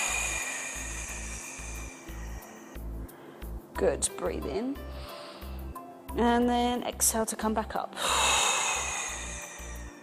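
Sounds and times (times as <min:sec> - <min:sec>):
forceful hissing exhale: 0:00.0 - 0:03.5, 0:08.0 - 0:10.0.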